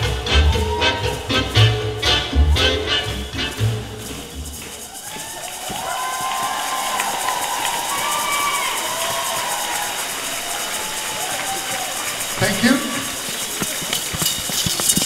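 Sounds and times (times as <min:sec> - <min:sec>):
cha-cha dance music: 0:00.0 - 0:06.4
audience cheering: 0:00.0 - 0:14.2.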